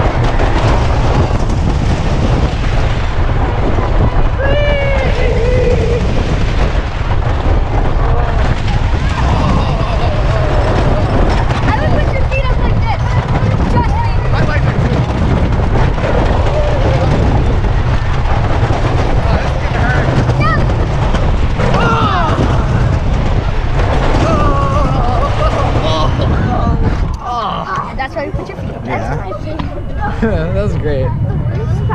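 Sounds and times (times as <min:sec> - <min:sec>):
roller coaster track rumble: 0:00.0 - 0:31.9
wind rushing on microphone: 0:00.0 - 0:31.9
riders screaming: 0:04.3 - 0:06.9, 0:08.0 - 0:11.9, 0:21.6 - 0:26.6.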